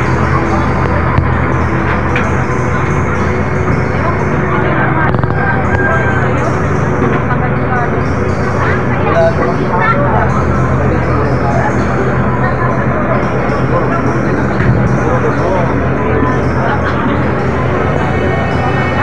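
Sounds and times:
fire truck engine running: 0.0s - 19.0s
people's voices: 0.0s - 19.0s.

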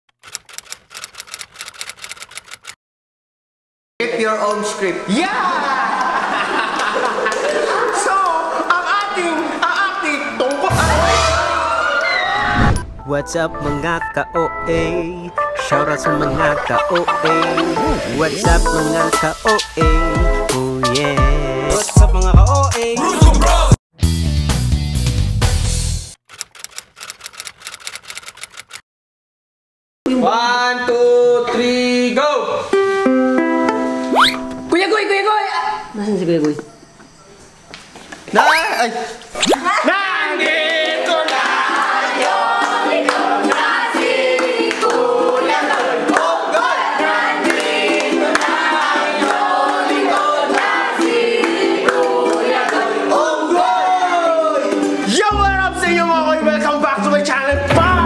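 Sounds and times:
loud music: 10.7s - 11.8s, 13.0s - 26.0s, 54.6s - 58.0s.

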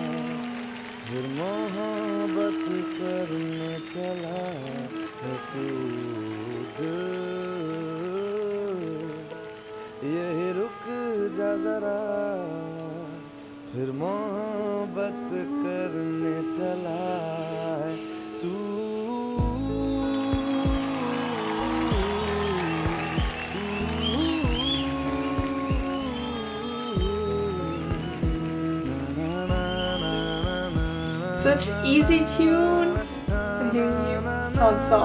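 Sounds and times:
acoustic guitar: 0.0s - 35.0s
man singing: 0.0s - 35.0s
low bass accompaniment: 19.4s - 20.9s.

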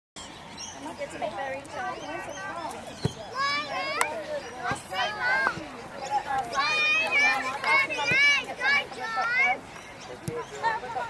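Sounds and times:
people talking at once: 0.7s - 11.0s.

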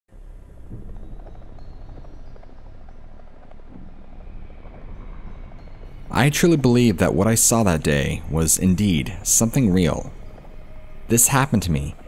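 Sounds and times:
low rumbling ambient drone: 0.1s - 12.0s.

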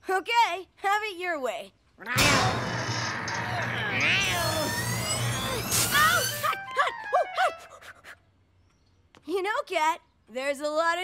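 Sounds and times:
gliding cries: 2.2s - 7.4s.

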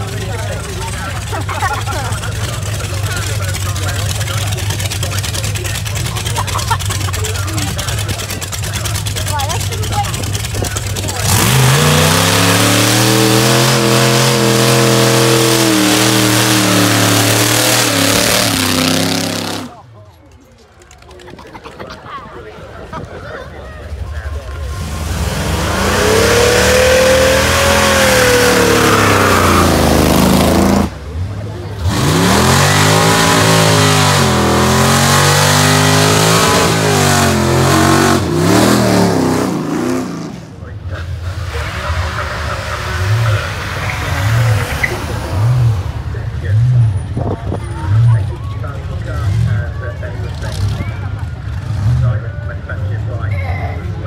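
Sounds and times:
car engine revving hard: 0.0s - 19.8s, 24.6s - 40.6s, 41.4s - 47.2s
car engine idling: 0.0s - 21.3s.

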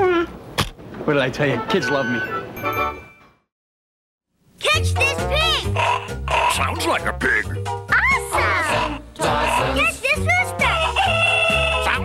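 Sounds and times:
rooster crowing: 11.0s - 11.8s.

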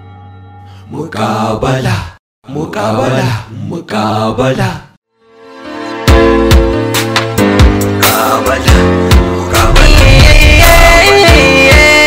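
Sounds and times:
deep male voice chanting: 9.5s - 11.5s.

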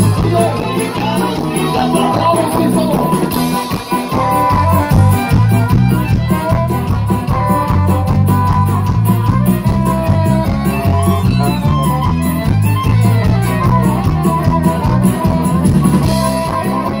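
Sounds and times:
live band playing instrumental: 0.0s - 17.0s.

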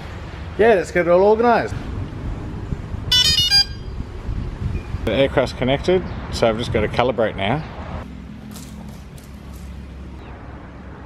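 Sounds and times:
high electronic beeps: 3.1s - 3.9s.

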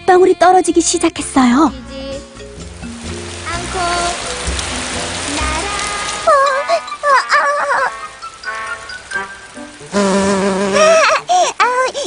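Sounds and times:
background music: 0.0s - 11.6s
rain hiss: 1.4s - 12.0s.

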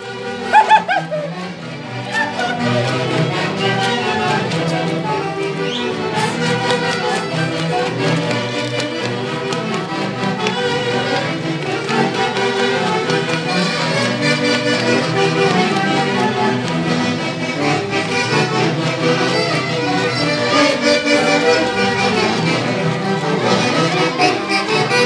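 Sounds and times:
folk dance music with violin and reeds: 0.0s - 25.0s.

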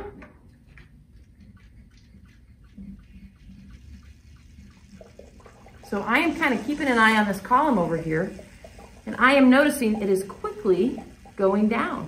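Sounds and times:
water sucked through hand pump: 1.6s - 12.0s.

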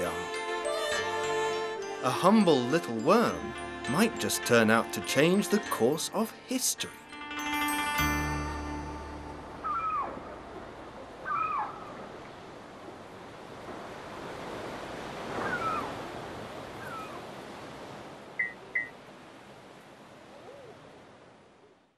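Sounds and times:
gliding animal cries: 9.6s - 10.3s, 11.2s - 12.0s, 15.4s - 16.0s, 16.8s - 17.2s.

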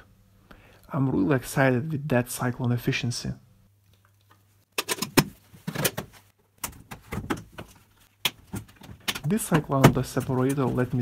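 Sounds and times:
plastic parts knocking and clicking: 4.8s - 11.0s.

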